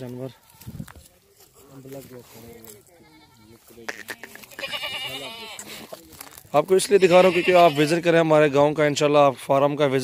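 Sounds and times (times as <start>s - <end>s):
goat bleating: 2.7s - 6.0s, 6.8s - 8.2s.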